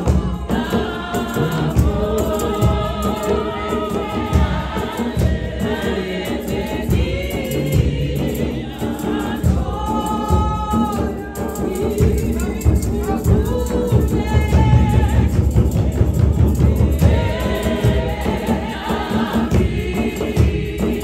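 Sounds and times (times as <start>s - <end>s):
congregation singing a hymn: 0.0s - 21.0s
deep beat: 0.0s - 21.0s.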